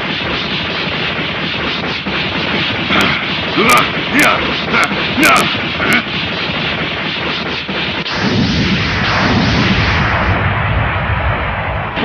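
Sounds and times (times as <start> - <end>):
rumble of blasts and impacts: 0.0 - 12.0.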